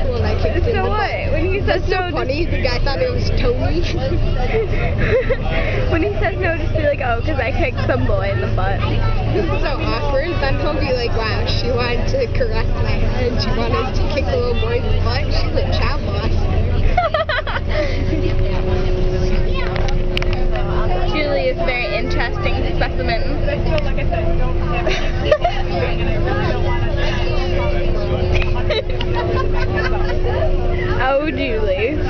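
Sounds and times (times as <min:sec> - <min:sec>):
bus engine rumble: 0:00.0 - 0:32.0
constant hum: 0:00.0 - 0:32.0
murmur of passengers talking: 0:00.0 - 0:32.0.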